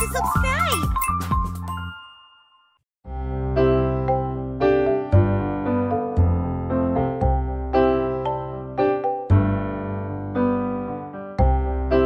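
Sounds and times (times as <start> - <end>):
chiming ding: 0.0 - 2.8
bright jingle music: 0.0 - 2.9.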